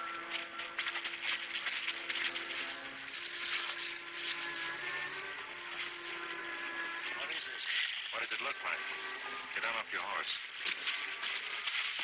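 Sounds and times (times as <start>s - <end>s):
horse hoofbeats on dry ground: 0.0s - 4.4s.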